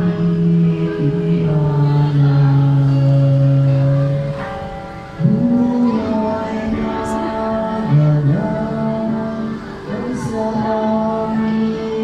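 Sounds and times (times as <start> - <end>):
hymn on electronic keyboard: 0.0 - 12.0.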